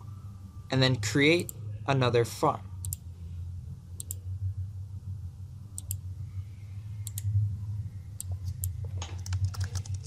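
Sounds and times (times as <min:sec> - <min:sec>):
steady low hum: 0:00.0 - 0:10.0
computer mouse clicking: 0:05.8 - 0:06.0, 0:07.0 - 0:07.3.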